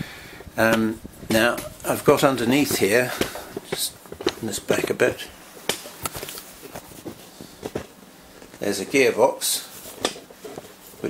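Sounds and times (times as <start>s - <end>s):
low background hiss: 0.0s - 11.0s
faint clicks and taps: 2.6s - 5.0s.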